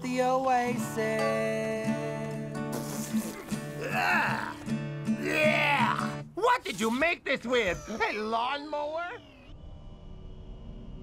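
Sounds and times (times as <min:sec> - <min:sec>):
short wailing vocal cry: 0:03.8 - 0:06.2, 0:07.7 - 0:09.5
faint steady hum: 0:09.3 - 0:11.0.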